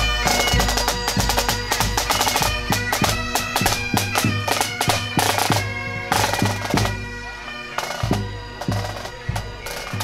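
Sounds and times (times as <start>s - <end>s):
snare drums: 0.0s - 7.0s, 7.8s - 10.0s
bagpipes playing: 0.0s - 10.0s.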